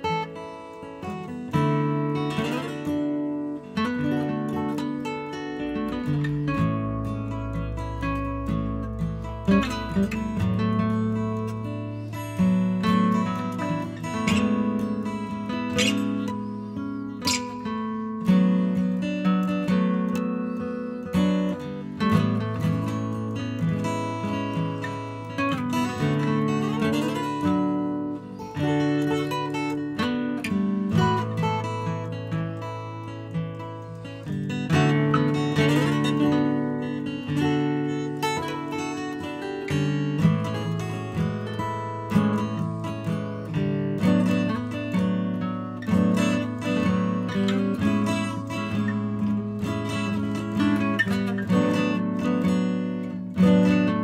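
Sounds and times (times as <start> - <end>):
acoustic guitar tune: 0.0 - 54.0.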